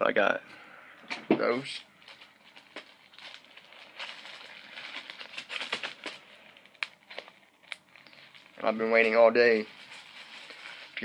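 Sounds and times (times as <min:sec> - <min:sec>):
plastic packaging crinkling: 0:01.6 - 0:11.0.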